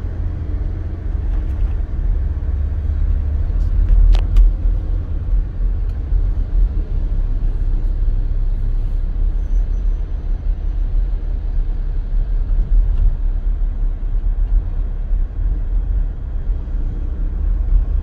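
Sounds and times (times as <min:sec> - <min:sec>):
car driving in traffic: 0:00.0 - 0:18.0.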